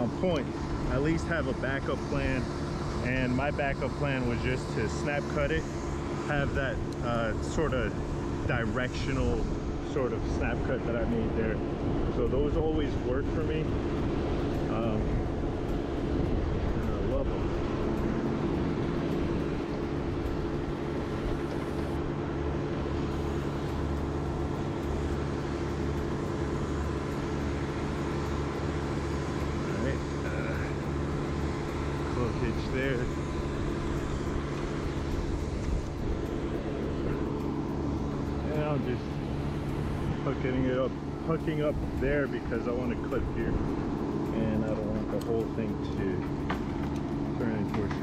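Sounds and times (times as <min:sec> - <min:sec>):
engine idling: 0:00.0 - 0:48.0.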